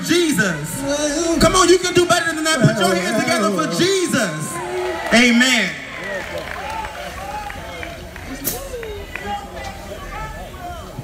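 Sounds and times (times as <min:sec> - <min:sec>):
steady low rumble: 0:00.0 - 0:03.3.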